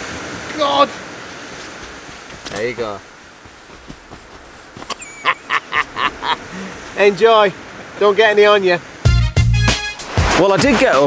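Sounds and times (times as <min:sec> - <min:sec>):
man laughing: 0:04.9 - 0:06.8.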